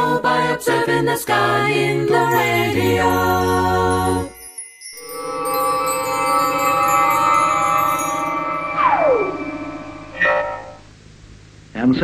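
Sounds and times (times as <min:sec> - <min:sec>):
vocal group holding a chord: 0:00.0 - 0:09.5.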